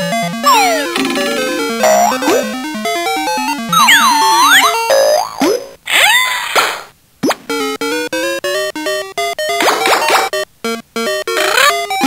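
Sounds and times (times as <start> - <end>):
beeping toy melody: 0.1 - 5.2.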